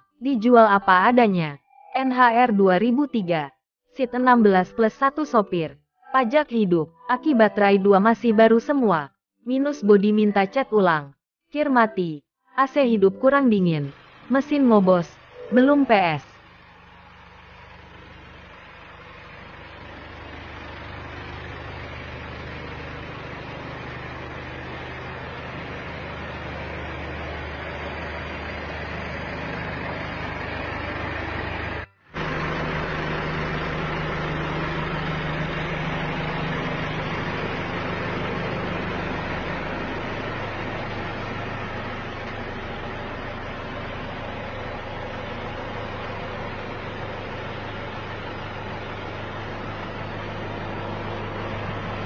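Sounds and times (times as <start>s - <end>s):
diesel engine idling: 12.9s - 52.0s.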